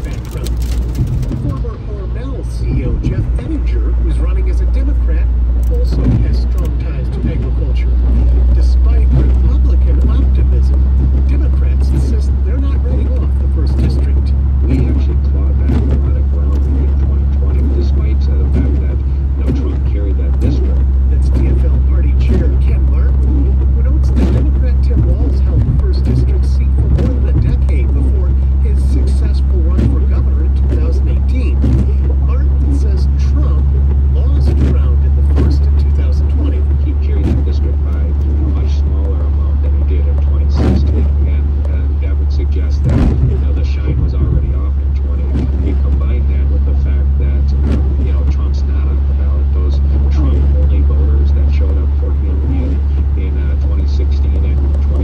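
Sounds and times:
car road rumble on wet pavement: 0.0s - 55.0s.

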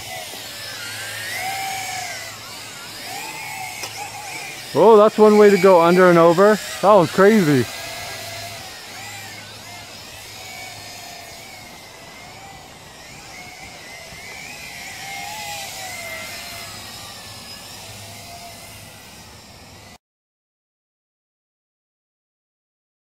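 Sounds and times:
toy drone motors whining: 0.0s - 20.0s.

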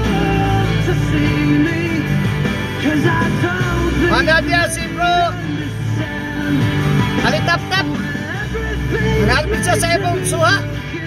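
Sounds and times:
song on car radio: 0.0s - 11.0s.

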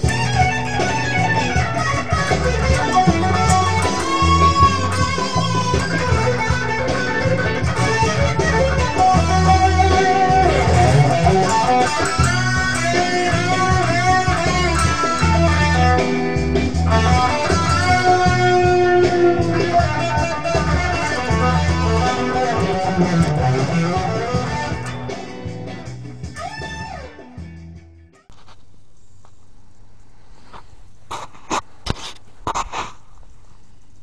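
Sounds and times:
low bass part: 0.0s - 28.0s
electric guitar lead melody: 0.0s - 28.2s.

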